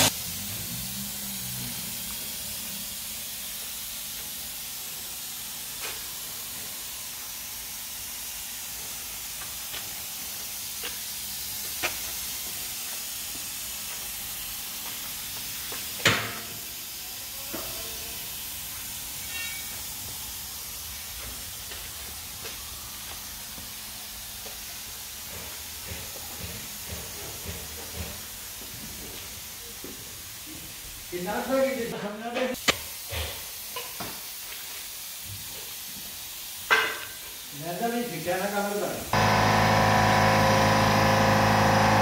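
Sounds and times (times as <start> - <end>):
spray gun hissing: 0.0 - 25.0, 32.6 - 42.0.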